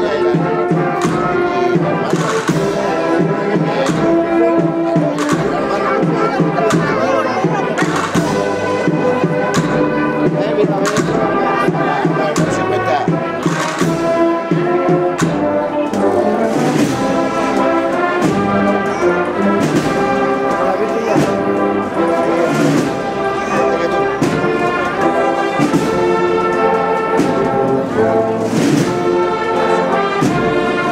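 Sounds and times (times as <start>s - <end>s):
brass band playing a march: 0.0s - 30.9s
drum strokes: 0.0s - 30.9s.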